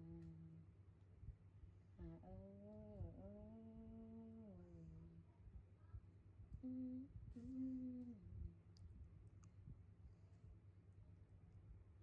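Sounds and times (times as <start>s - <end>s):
woman humming: 0.0s - 0.6s, 2.0s - 5.3s, 6.6s - 8.6s.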